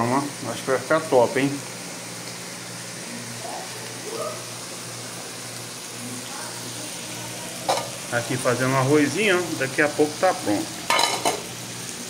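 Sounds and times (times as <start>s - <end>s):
meat and onions sizzling on griddle: 0.0s - 12.0s.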